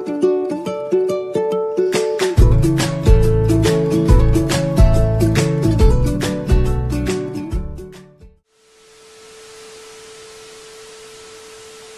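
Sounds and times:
static hiss: 8.5 - 11.9.

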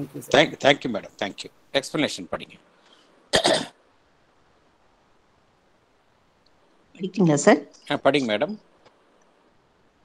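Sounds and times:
person coughing: 3.4 - 3.8.

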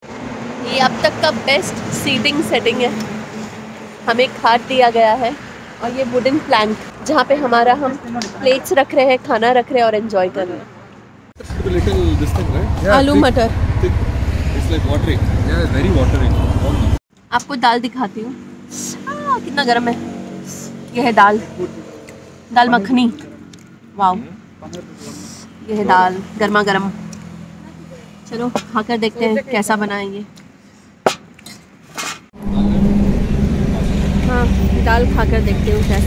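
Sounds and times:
steady low rumble: 11.4 - 17.0, 32.4 - 36.0.

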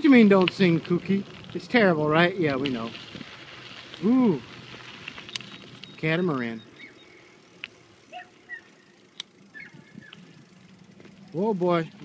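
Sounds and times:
faint chirps: 5.4 - 10.4
sharp clicks: 9.1 - 9.4.

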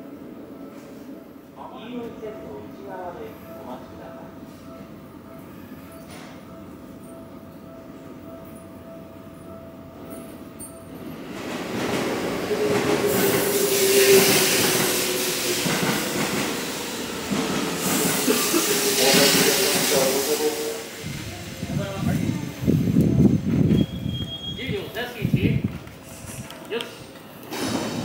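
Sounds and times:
electric train running: 11.3 - 23.8.

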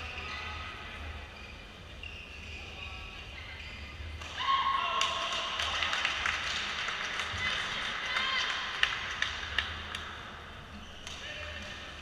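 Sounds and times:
shoes squeaking on court: 1.3 - 4.2, 10.7 - 11.8.

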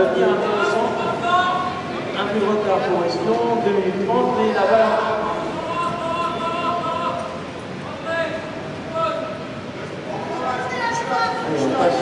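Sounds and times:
background murmur: 0.0 - 12.0.

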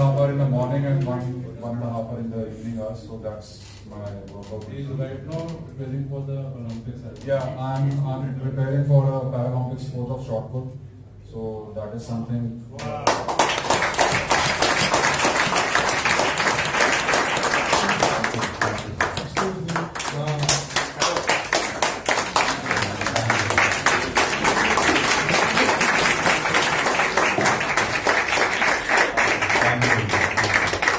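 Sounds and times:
audience applauding: 12.8 - 30.9.

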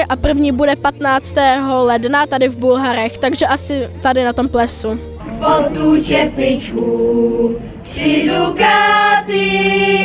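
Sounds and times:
choir singing unaccompanied: 5.2 - 10.0.

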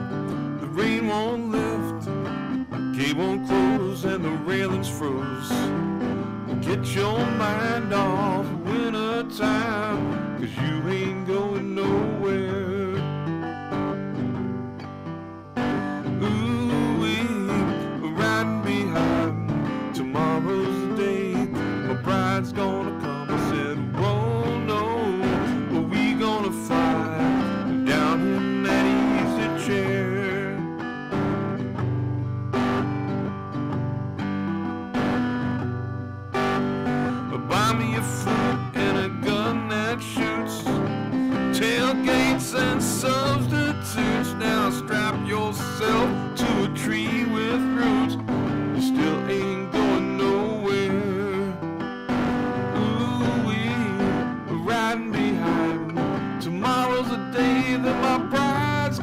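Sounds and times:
man singing: 0.0 - 13.5, 15.9 - 30.9, 36.4 - 59.0
acoustic guitar strumming: 0.0 - 59.0.

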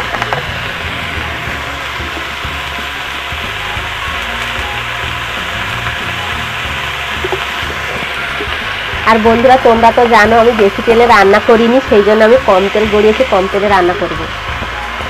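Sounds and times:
food sizzling in oil: 0.0 - 15.0.

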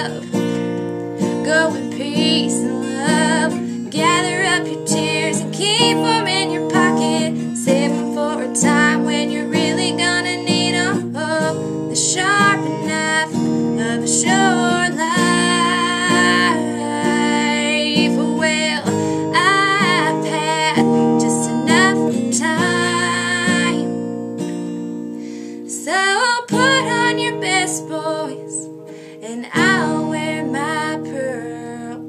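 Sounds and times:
strummed acoustic guitar: 0.0 - 32.0
woman singing a ballad: 0.0 - 32.0.

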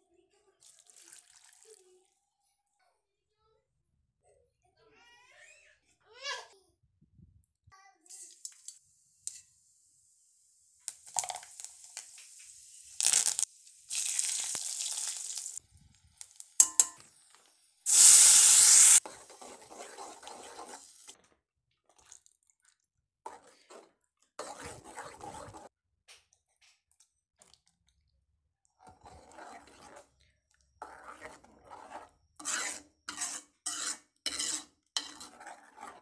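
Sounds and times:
hot oil sizzling: 8.1 - 21.2.

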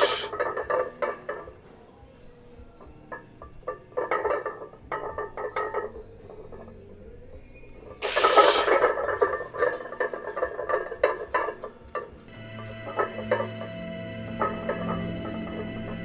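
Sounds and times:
weight plates clinking: 0.0 - 16.0.

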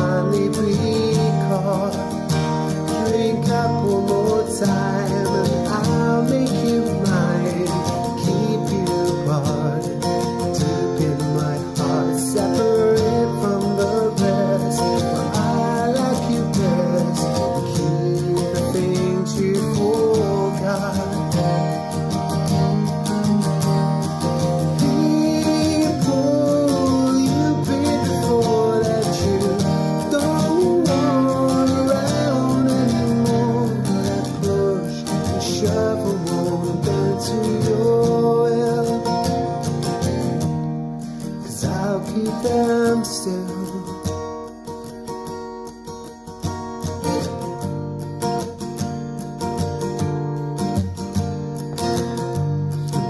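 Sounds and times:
acoustic guitar chords: 0.0 - 53.0.

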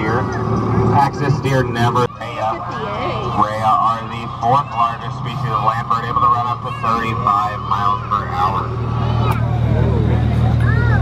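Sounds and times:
scattered voices: 0.0 - 11.0
train engine humming: 0.0 - 11.0.

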